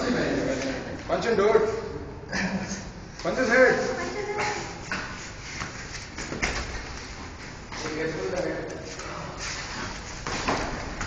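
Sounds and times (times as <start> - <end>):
rustling and scuffling on mats: 4.8 - 11.0.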